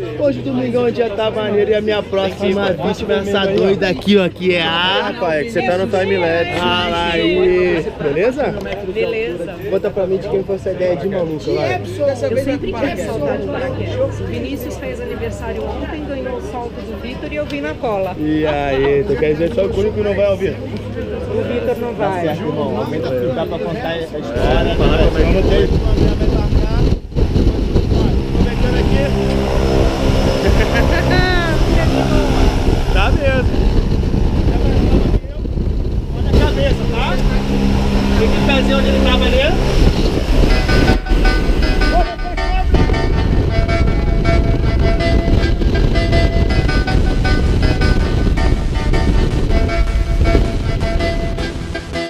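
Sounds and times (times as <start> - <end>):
propeller engine running: 24.4 - 52.0
voices calling: 27.3 - 52.0.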